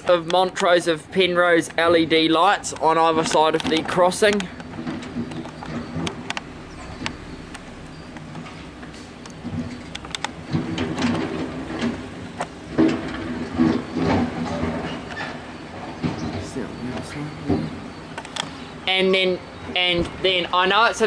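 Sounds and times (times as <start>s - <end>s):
vehicle engine running: 0.0s - 21.0s.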